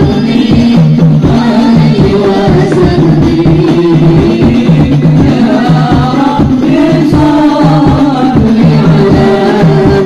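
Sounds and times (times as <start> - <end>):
hand-struck frame drums: 0.0 - 10.0.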